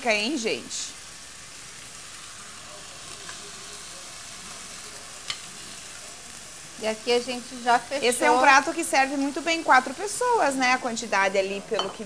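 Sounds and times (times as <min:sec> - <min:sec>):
oil sizzling in pot: 0:00.0 - 0:12.0.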